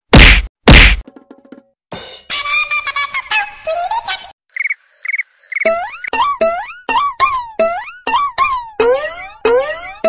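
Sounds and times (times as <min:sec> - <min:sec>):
wooden stick whacks: 0:00.1 - 0:01.0.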